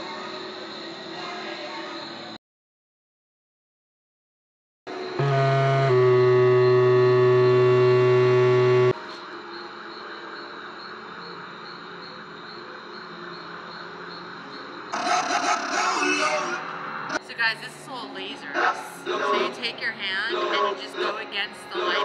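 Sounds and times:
buzzy electronic tone: 5.2s - 9.0s.

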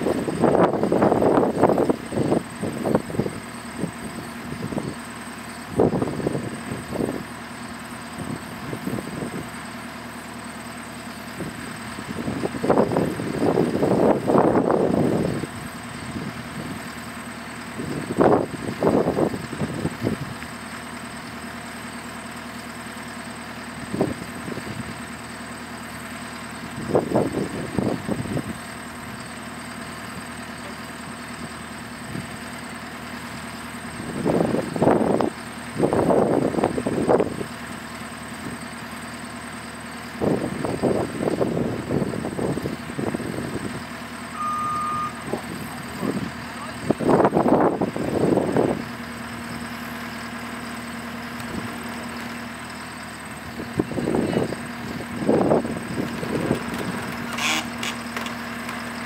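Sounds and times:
diesel engine idling: 0.0s - 59.0s
louder bursts of engine noise: 0.0s - 59.0s.

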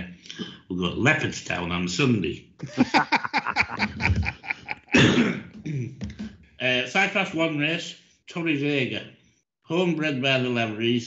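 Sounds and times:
man coughing: 2.6s - 5.9s.

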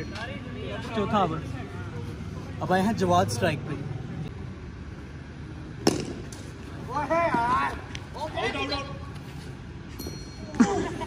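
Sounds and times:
cricket bat striking ball: 5.8s - 6.5s.

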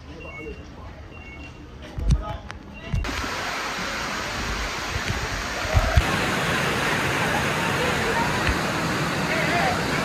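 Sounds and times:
waterfall rushing: 3.0s - 10.0s.

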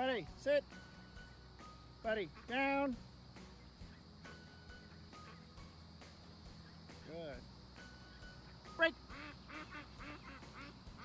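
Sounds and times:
ducks quacking: 2.1s - 2.9s, 8.4s - 11.0s.

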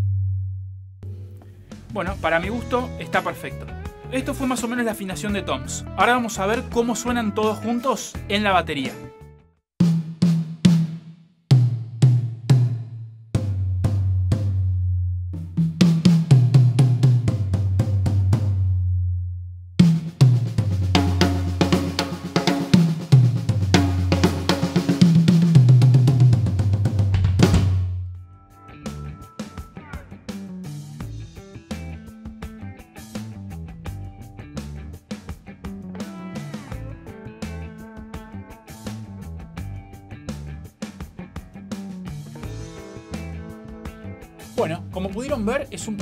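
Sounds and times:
tom drums played by hand: 9.8s - 14.6s, 15.4s - 18.6s, 19.8s - 27.9s, 28.9s - 46.0s.

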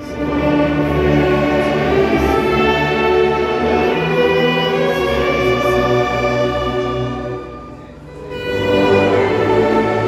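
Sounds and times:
congregation singing: 0.0s - 10.0s
wind and brass band playing a hymn: 0.0s - 10.0s.

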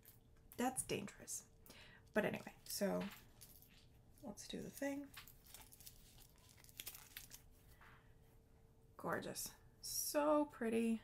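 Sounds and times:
fabric crinkling and rustling: 2.8s - 7.8s.

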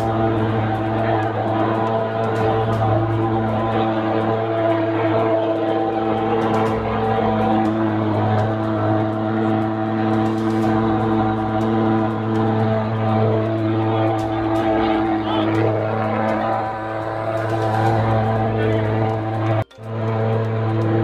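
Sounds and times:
fogging machine droning: 0.0s - 21.0s.

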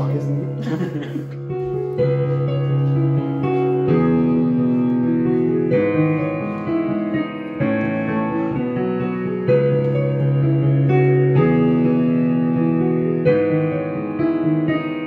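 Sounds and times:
digital piano chords: 0.0s - 15.0s.

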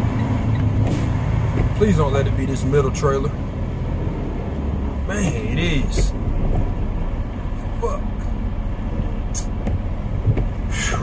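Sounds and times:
truck diesel engine rumbling: 0.0s - 11.0s.

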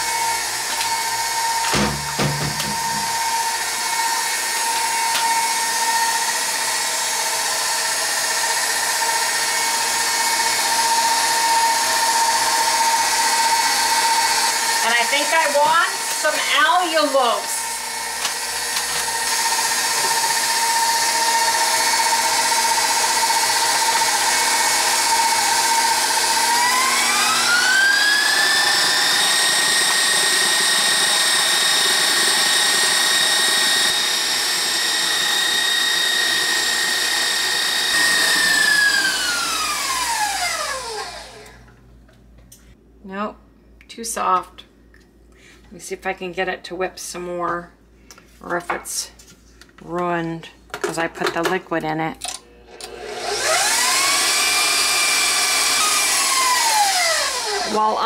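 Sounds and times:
stand mixer motor whine: 0.0s - 41.7s, 52.6s - 58.0s.

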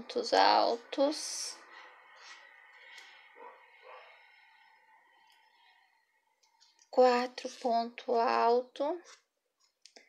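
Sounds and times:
faint steady hum: 0.0s - 9.0s.

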